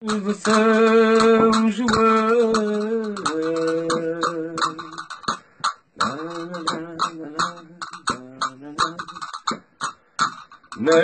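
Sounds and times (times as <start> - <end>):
man singing unaccompanied: 0.0 - 9.8, 10.7 - 11.0
sharp clicks: 0.0 - 11.0.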